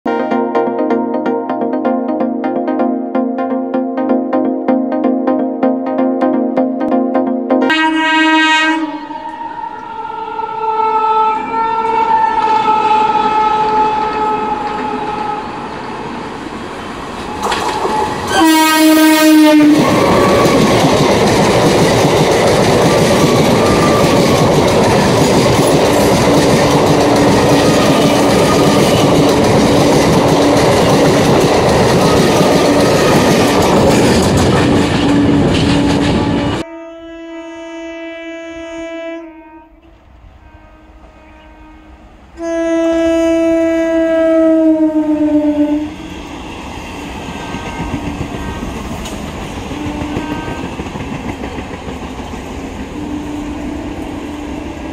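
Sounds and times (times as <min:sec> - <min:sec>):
train passing with steady rush: 0:06.8 - 0:36.7, 0:39.7 - 0:54.9
train air horn: 0:07.6 - 0:16.0, 0:17.3 - 0:20.7, 0:25.8 - 0:29.4, 0:35.0 - 0:46.4, 0:47.1 - 0:50.9, 0:52.9 - 0:54.9
distant train horn: 0:07.6 - 0:16.1, 0:17.2 - 0:20.9, 0:22.8 - 0:33.9, 0:34.6 - 0:51.0, 0:52.8 - 0:54.9
wheels clattering over rails: 0:19.8 - 0:36.6.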